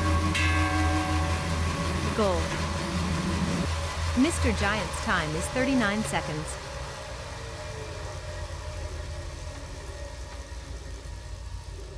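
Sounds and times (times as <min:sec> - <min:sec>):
bicycle trainer spinning: 0:00.0 - 0:11.9.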